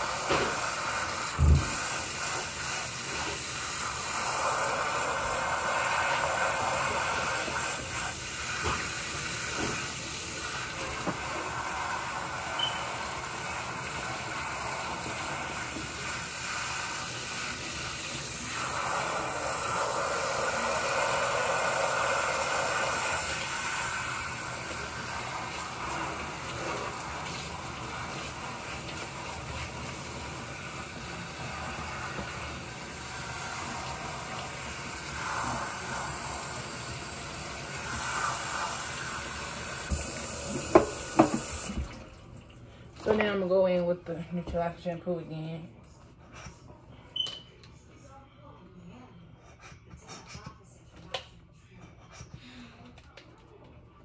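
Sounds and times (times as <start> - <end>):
faucet water running into sink: 0.0 - 43.5.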